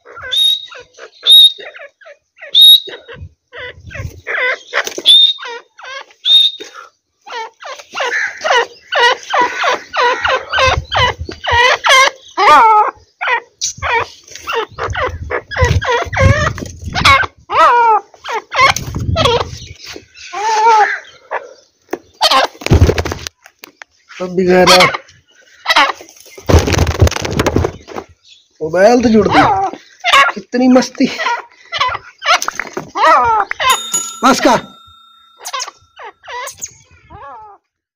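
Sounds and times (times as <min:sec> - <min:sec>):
birds calling harsh notes: 0:00.0 - 0:22.9, 0:23.7 - 0:37.6.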